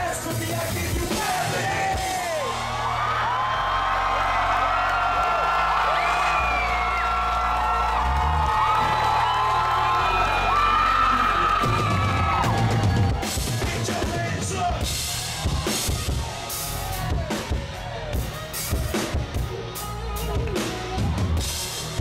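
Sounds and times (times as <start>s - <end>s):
bass line: 0.0s - 22.0s.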